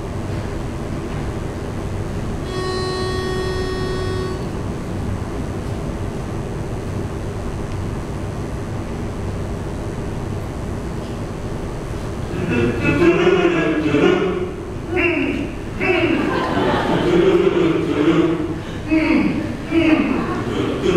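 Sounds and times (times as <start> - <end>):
low rumble of hall noise: 0.0 - 20.9
held starting note: 2.4 - 4.7.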